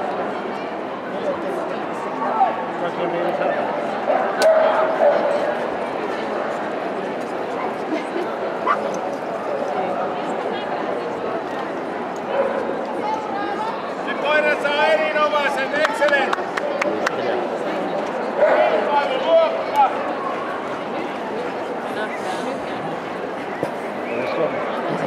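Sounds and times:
crowd chatter: 0.0s - 25.0s
dogs barking and yipping: 8.6s - 8.9s.

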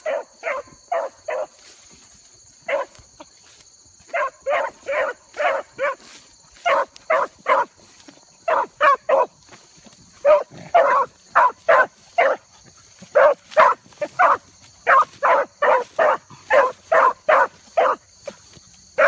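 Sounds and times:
dogs barking: 0.0s - 1.6s, 2.6s - 3.0s, 4.0s - 7.8s, 8.4s - 9.4s, 10.2s - 18.4s.

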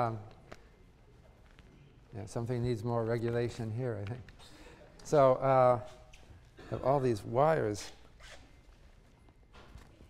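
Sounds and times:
faint rustles of wires and clothing: 0.0s - 6.6s, 7.2s - 10.0s.

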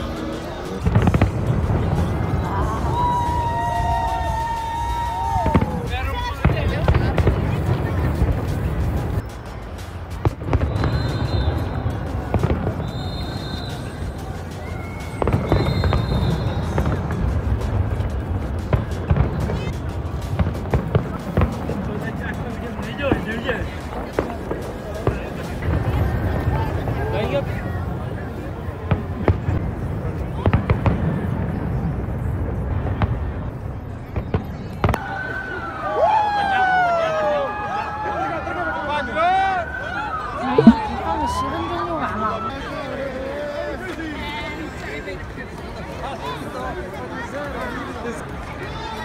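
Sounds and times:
music playing: 0.0s - 26.4s, 40.4s - 41.4s
crowd voices: 0.0s - 49.0s
fireworks bursting in bangs: 0.6s - 2.6s, 5.4s - 9.2s, 10.1s - 14.0s, 15.0s - 22.2s.

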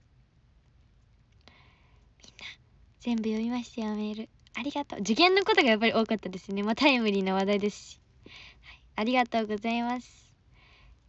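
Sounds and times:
woman whispering: 2.2s - 7.7s.

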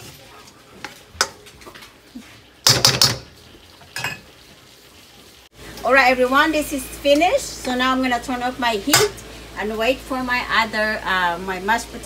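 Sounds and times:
vegetables sizzling: 0.0s - 12.0s.

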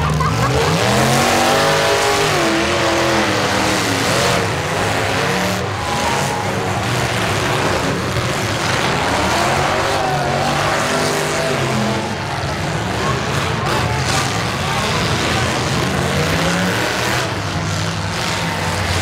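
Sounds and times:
car engines revving: 0.0s - 19.0s.

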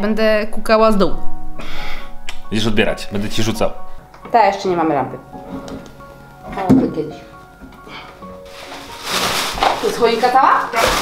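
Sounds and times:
quiet background music: 0.0s - 11.0s
wooden ladder rustling and scraping: 7.7s - 11.0s.

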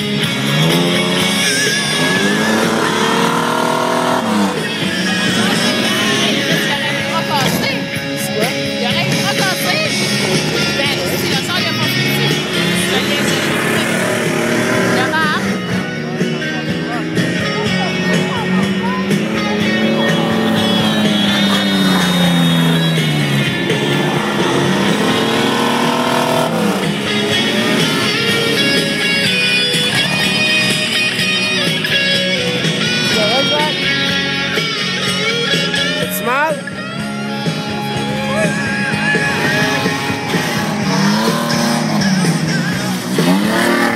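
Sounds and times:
music playing: 0.0s - 43.9s
pickup truck engines running: 0.0s - 43.9s.

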